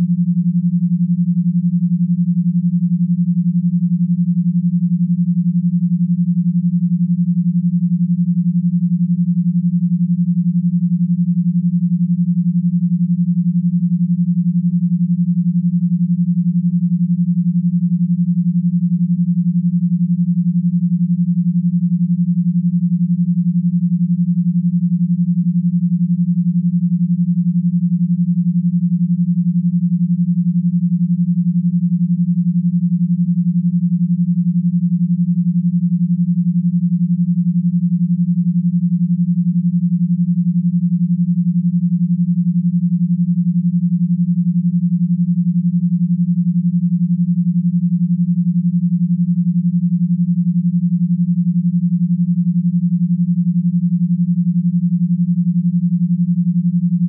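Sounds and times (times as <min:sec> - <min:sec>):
pulsing low sine tones: 0:00.0 - 0:57.0.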